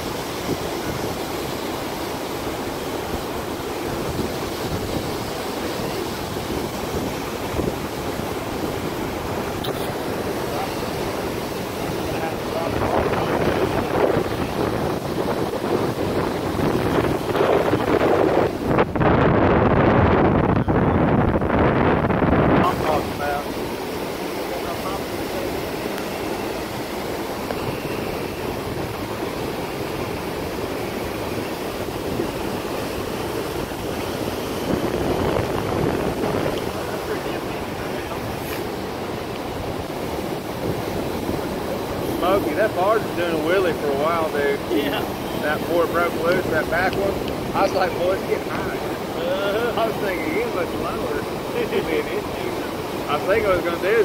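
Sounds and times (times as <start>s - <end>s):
river water rushing: 0.0s - 54.0s
wind buffeting microphone: 0.0s - 54.0s.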